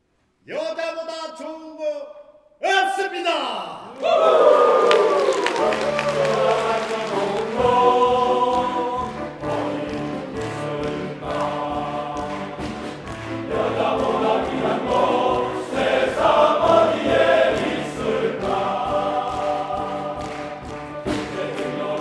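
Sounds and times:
men's choir singing: 0:05.4 - 0:22.0.

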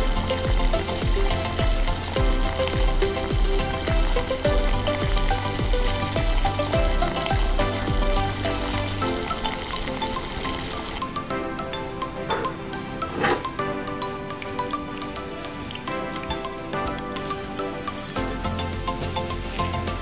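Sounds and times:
gravy sizzling in a pan: 0:00.0 - 0:11.3
music with beat and bass: 0:00.0 - 0:20.0.

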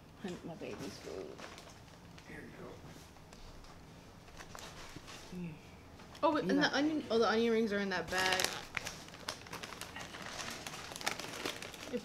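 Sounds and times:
paper bag rustling: 0:04.3 - 0:05.3, 0:08.1 - 0:12.0.

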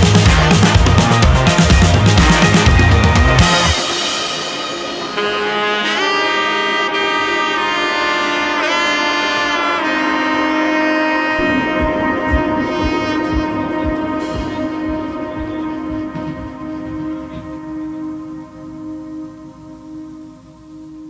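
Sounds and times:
low thumping beat: 0:00.0 - 0:03.8, 0:11.3 - 0:18.6
melody of long held notes: 0:00.0 - 0:21.0.

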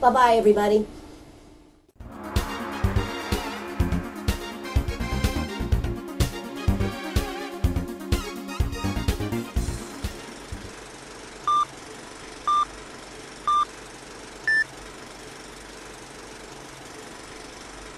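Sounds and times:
background music: 0:02.0 - 0:10.8
countdown beeps: 0:11.5 - 0:11.7, 0:12.5 - 0:12.7, 0:13.5 - 0:13.7, 0:14.5 - 0:14.7.

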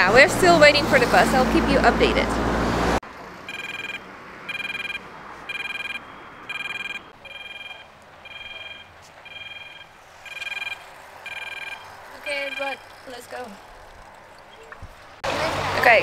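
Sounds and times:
faint traffic noise: 0:00.0 - 0:16.0
pedestrian crossing signal beeps: 0:03.4 - 0:13.2.

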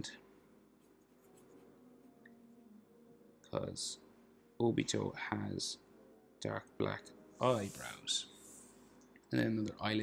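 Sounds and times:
marker scratching on paper: 0:00.8 - 0:01.9.

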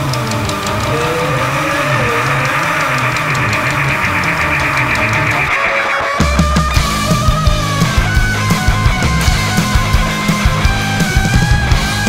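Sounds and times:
bass line: 0:00.0 - 0:12.0
distorted electric guitar: 0:00.0 - 0:12.0
cymbal beat: 0:00.6 - 0:12.0.

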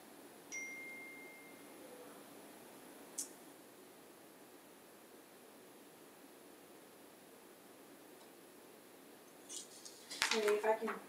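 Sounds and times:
notification ding: 0:00.5 - 0:01.6.

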